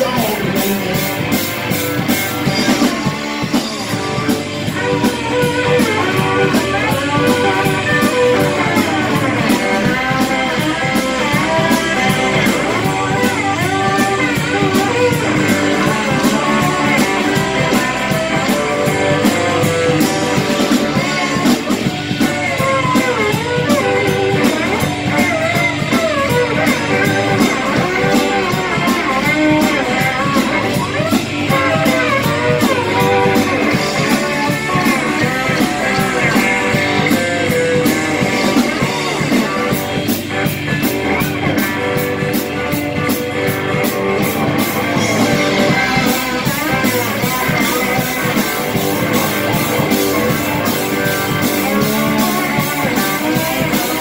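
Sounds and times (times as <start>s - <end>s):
live blues-rock band playing: 0.0s - 54.0s.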